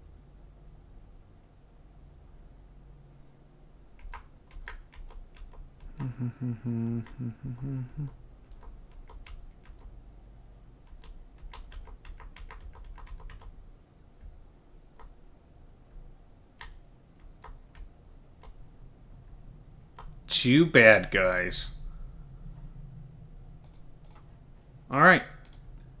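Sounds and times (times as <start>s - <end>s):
low steady hum: 0.0s - 26.0s
faint clicks: 23.6s - 24.3s, 25.4s - 25.9s.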